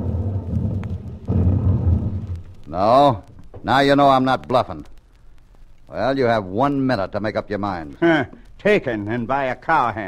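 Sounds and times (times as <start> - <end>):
distant dynamite blasts rumble: 0.0 - 2.7.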